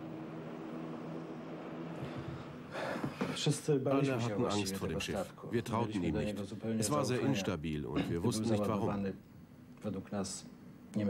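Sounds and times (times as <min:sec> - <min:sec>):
city traffic: 0:00.0 - 0:03.4
sharp intake of breath: 0:02.0 - 0:03.4.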